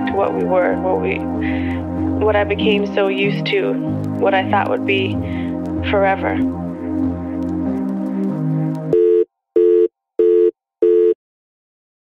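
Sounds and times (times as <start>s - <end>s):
telephone busy tone beeps: 8.9s - 11.2s.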